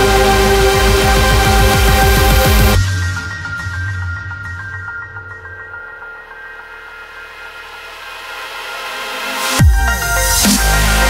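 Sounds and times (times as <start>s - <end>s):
held synth chords: 0.0s - 3.9s, 9.6s - 11.0s.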